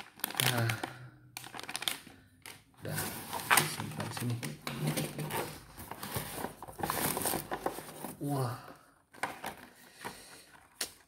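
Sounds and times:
hands rummaging in cardboard box: 2.9s - 8.3s.

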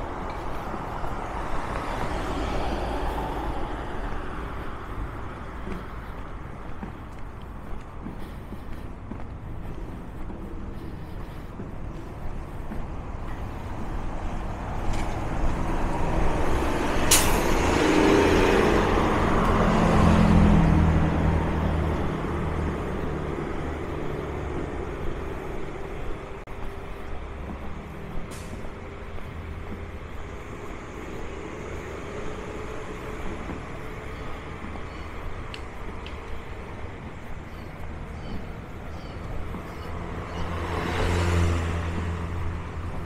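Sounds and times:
diesel engine rumble passing: 0.0s - 43.0s
street traffic: 0.0s - 43.0s
air brakes hissing: 10.4s - 19.6s, 26.5s - 42.0s.

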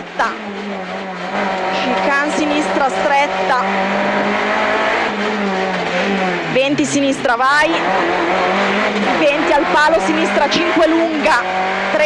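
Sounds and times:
rally car engine running hard: 0.0s - 12.0s.

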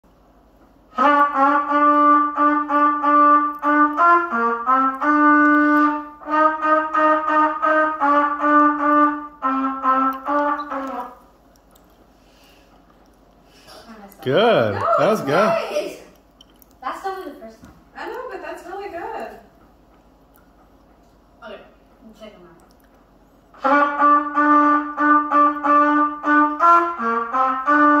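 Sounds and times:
solo trumpet notes: 0.9s - 11.2s, 23.6s - 28.0s.

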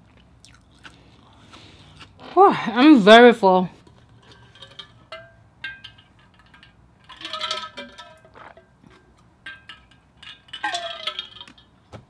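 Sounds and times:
metal bottle clicks and clinks: 4.2s - 11.8s.

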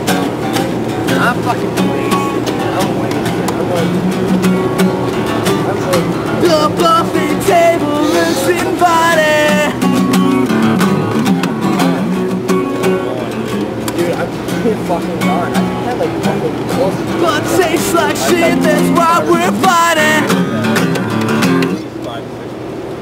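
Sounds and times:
strummed acoustic guitar: 0.0s - 22.8s
man singing: 6.1s - 10.2s, 17.0s - 20.6s.

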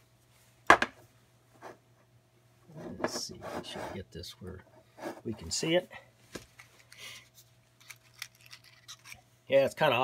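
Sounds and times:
matchbox clicks and scrapes: 7.8s - 9.2s.

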